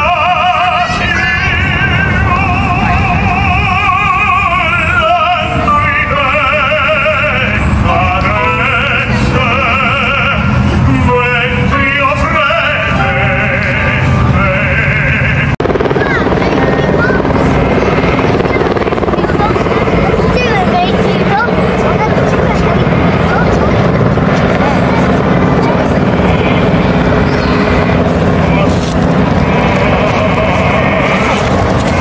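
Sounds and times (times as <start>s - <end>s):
helicopter rotor: 0.0s - 32.0s
people talking: 0.0s - 32.0s.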